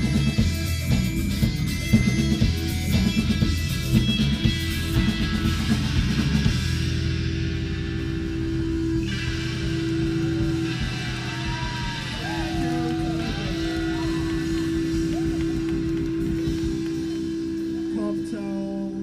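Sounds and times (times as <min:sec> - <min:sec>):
live rock band playing: 0:00.0 - 0:19.0
held droning note: 0:01.8 - 0:19.0.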